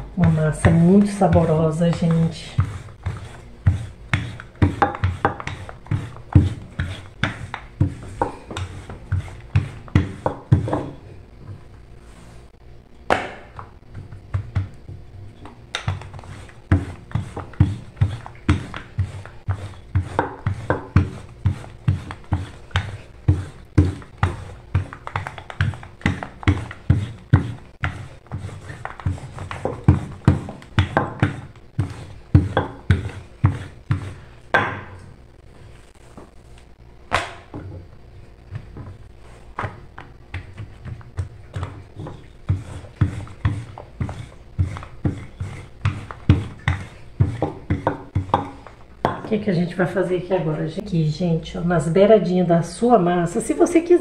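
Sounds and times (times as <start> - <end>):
rolling pin knocking on stone: 0.2 - 11.0, 13.1 - 13.7, 15.7 - 35.0, 39.6 - 49.4.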